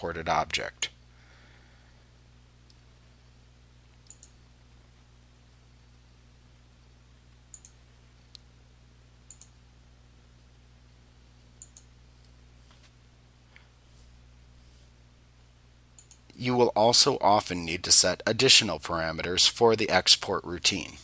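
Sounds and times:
faint low electrical hum: 0.0 - 21.0.

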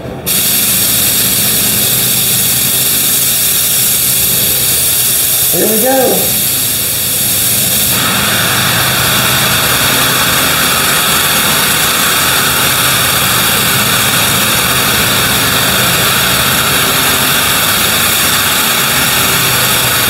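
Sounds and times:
steady low hum: 0.0 - 20.0
paint spray gun hissing: 0.3 - 20.0.

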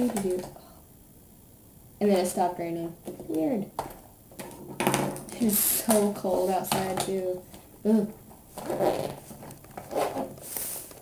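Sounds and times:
bag rustling and bumping: 8.2 - 10.6.

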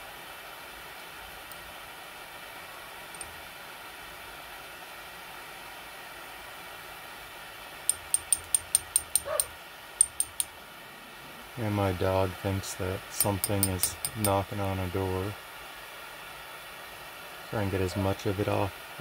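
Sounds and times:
metal spatula tapping porcelain dish: 7.9 - 9.4, 10.0 - 10.5, 13.2 - 14.4
dog whining: 9.2 - 9.5
propane torch hissing: 11.3 - 19.0.

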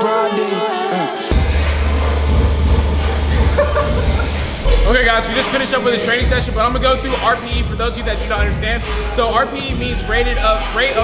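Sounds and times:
low rumble: 1.3 - 5.4
even hiss: 1.3 - 6.0.

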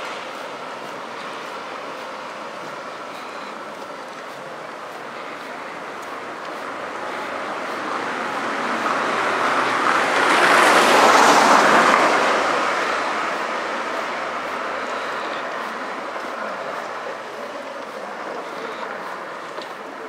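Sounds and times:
small van passing: 0.0 - 20.0.

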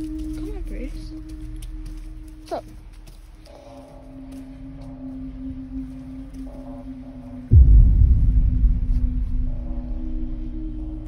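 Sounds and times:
ambient music drone: 0.0 - 11.0.

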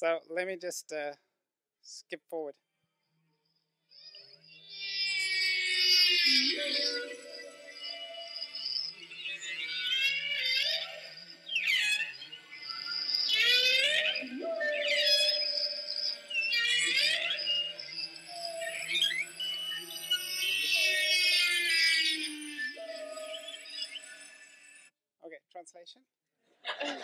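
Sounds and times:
whale song from phone: 4.0 - 24.9.

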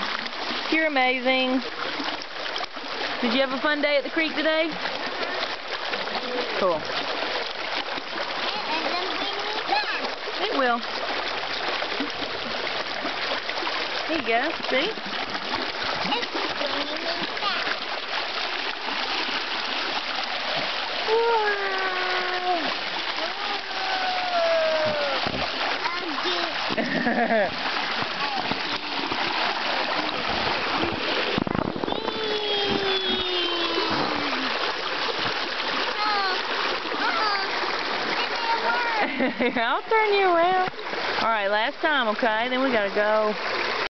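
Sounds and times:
creek water flowing over rocks: 0.0 - 43.9
water splashing: 0.0 - 43.9.

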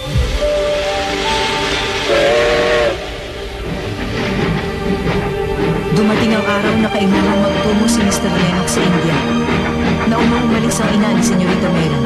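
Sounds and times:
steam locomotive whistle: 0.0 - 3.8
chord of steady tones: 0.0 - 12.0
music: 0.0 - 12.0
steam hissing: 0.0 - 12.0.

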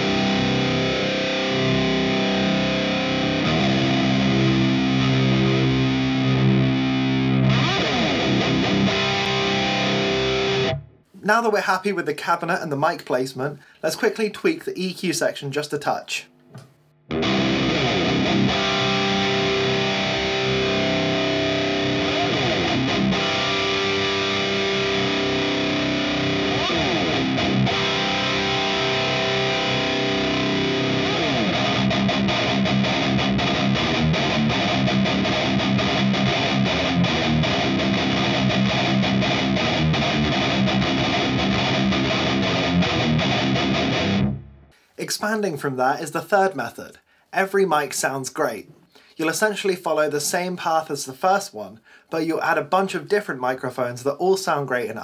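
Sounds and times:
guitar slides: 0.0 - 10.8, 17.1 - 44.6
distorted electric guitar riff: 0.0 - 11.1, 16.3 - 44.9.

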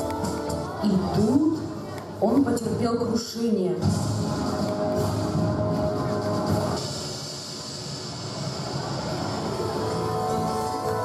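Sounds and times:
soundtrack music over speakers: 0.0 - 11.0.

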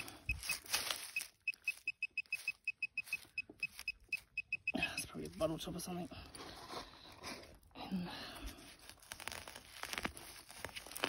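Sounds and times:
metal detector beeping: 0.0 - 5.2.

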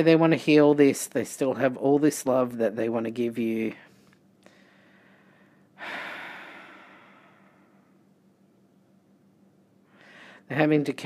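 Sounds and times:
low steady hum: 0.0 - 11.0
woman breathing out: 4.4 - 8.0, 9.9 - 10.5.

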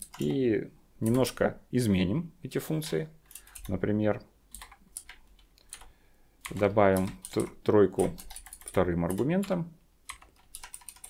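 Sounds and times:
keyboard keystrokes: 4.5 - 11.0.

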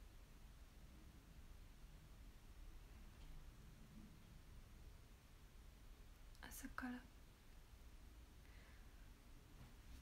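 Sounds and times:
woman whispering: 6.4 - 7.1.

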